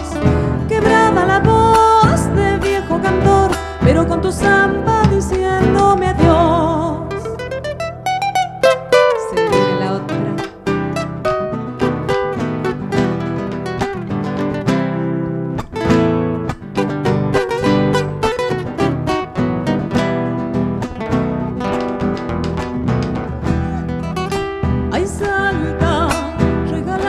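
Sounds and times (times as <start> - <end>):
picked guitar melody: 0.0 - 27.0
strummed acoustic guitars: 0.0 - 27.0
bass drum: 20.0 - 27.0.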